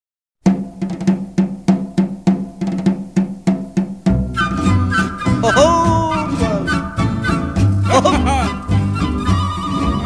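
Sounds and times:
drum beating steadily: 0.4s - 9.5s.

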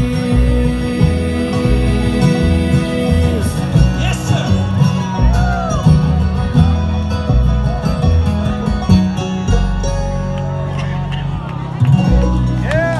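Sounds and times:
banjo picking: 0.0s - 12.9s
fiddle: 0.0s - 12.9s
guitar picking: 0.0s - 12.9s
upright bass: 0.0s - 12.9s.

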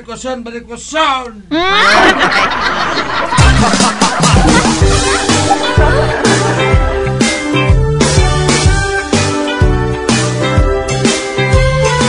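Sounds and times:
loud burst of laughter: 1.6s - 7.3s.

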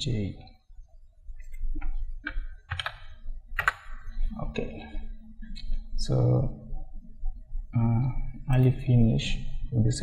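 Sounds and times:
keyboard keystroke clicks: 1.8s - 4.0s.

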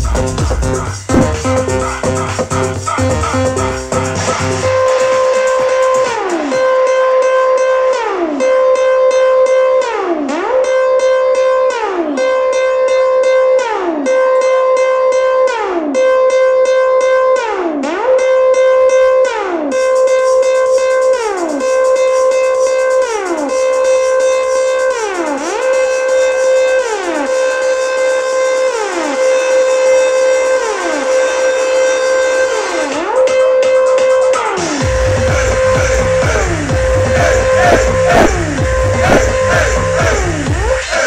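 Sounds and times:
electronic dance music: 0.0s - 14.6s, 17.5s - 41.0s.

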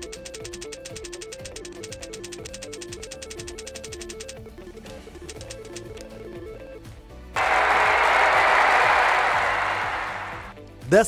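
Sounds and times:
recorded applause: 7.4s - 10.6s.

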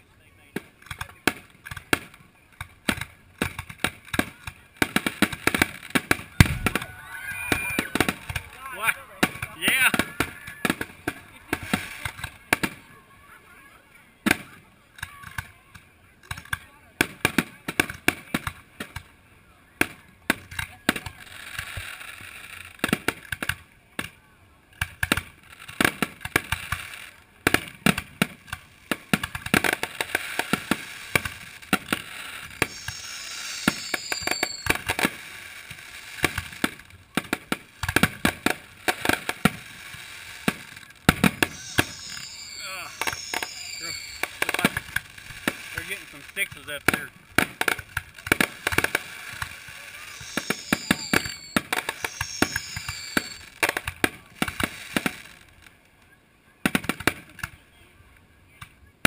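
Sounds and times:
spectators' voices: 0.0s - 22.3s, 26.5s - 55.4s
fireworks bursts and crackling: 0.0s - 56.0s, 56.6s - 57.6s.

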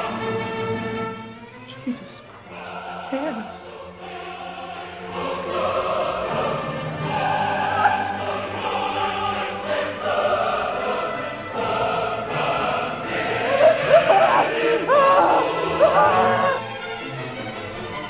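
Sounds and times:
dramatic choral music: 0.0s - 18.0s.

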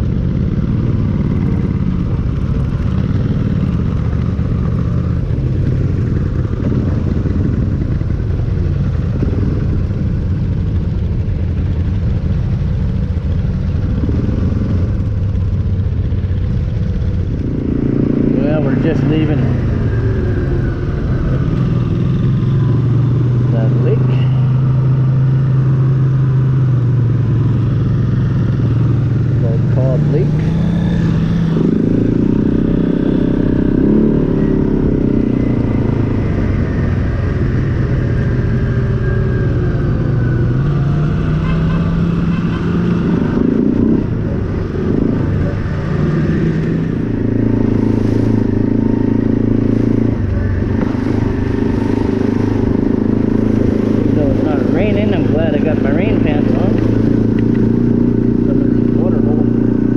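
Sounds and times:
atv engine running: 0.0s - 59.9s.

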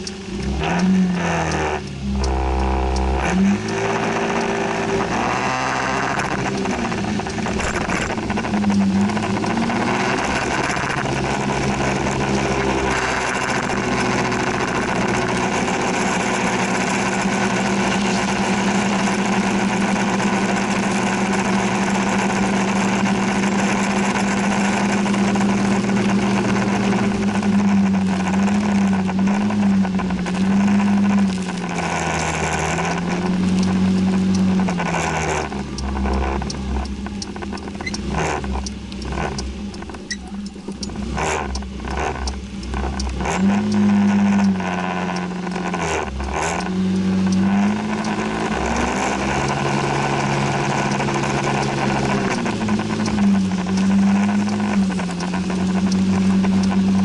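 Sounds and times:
motor scooter engine: 0.0s - 57.0s.

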